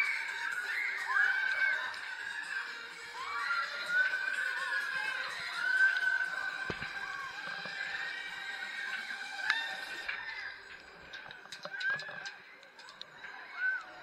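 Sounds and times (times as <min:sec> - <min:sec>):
riders screaming and whooping: 0:00.0 - 0:14.0.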